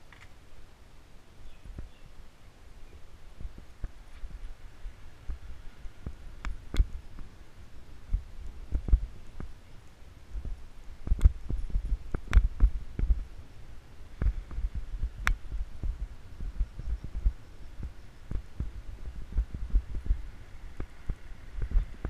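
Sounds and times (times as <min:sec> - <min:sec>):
wind buffeting microphone: 0:03.0 - 0:22.0
bicycle road bumps: 0:08.0 - 0:09.6, 0:10.3 - 0:13.4, 0:14.1 - 0:22.0.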